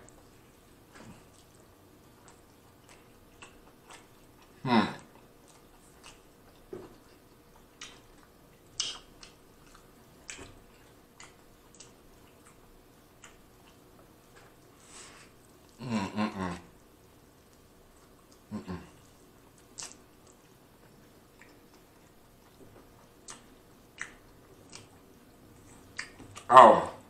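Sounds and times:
close chewing with wet smacks: 0.0 - 15.8, 16.6 - 26.5.

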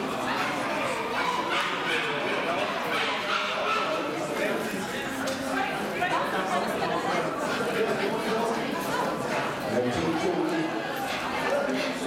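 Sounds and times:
crowd chatter in a large hall: 0.0 - 12.0
dogs barking and yipping: 1.2 - 4.1.

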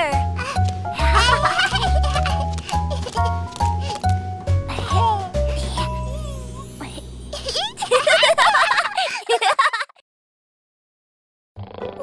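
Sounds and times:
children laughing: 0.9 - 4.0, 7.3 - 10.0.

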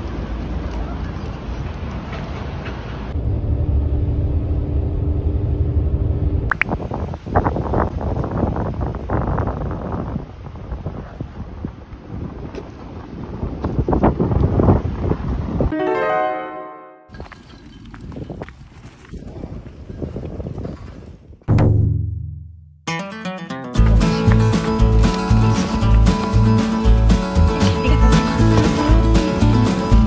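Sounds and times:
low engine hum: 0.0 - 6.6
road traffic passing: 0.0 - 6.6, 23.8 - 30.0
wind buffeting microphone: 6.5 - 15.7, 17.1 - 21.5.

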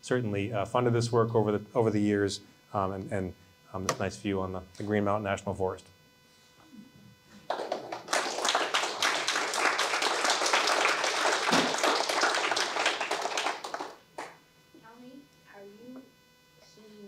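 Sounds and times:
audience applauding: 7.5 - 14.4.

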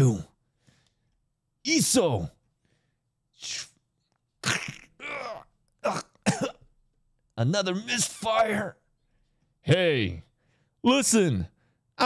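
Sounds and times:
short breath: 0.5 - 1.2, 2.6 - 3.0, 10.4 - 10.8
man coughing: 4.4 - 6.7.

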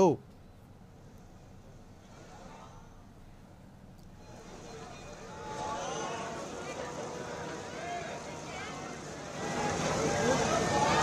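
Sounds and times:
background noise: 0.0 - 11.0.

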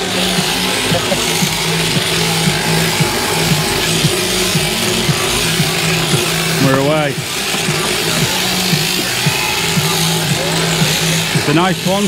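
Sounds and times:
electric shearing handpiece humming: 0.0 - 12.0
hissing cutting buzz: 0.0 - 12.0.

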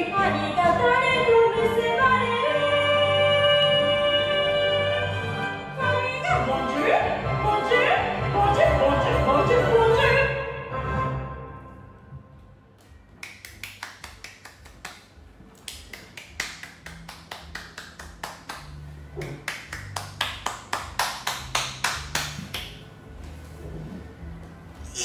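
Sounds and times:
person clapping hands: 13.2 - 22.8.

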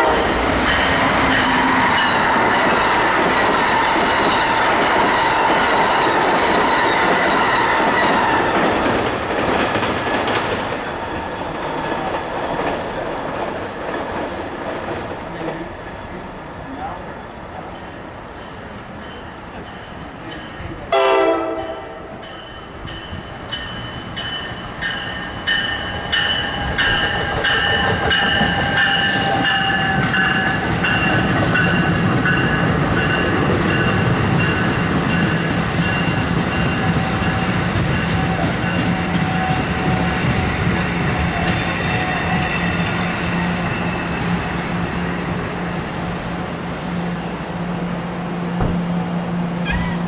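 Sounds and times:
train horn blast: 0.0 - 0.4, 20.9 - 22.2
passing train cars: 0.0 - 50.0.

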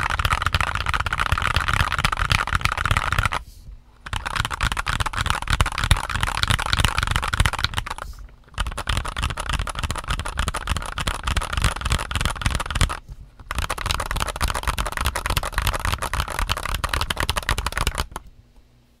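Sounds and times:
fast keyboard typing: 0.0 - 3.4, 4.0 - 18.3.

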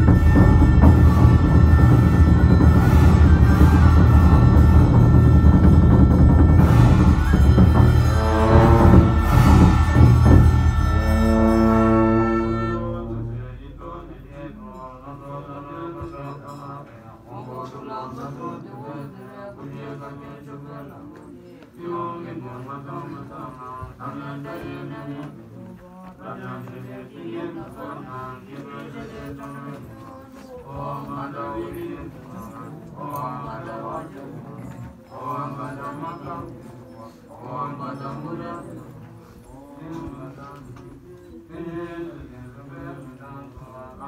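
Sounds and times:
low male voices chanting: 0.0 - 44.0.

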